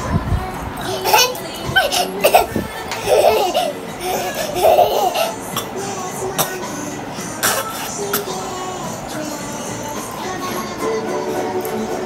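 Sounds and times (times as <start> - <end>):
toddler giggling: 0.8 - 5.7.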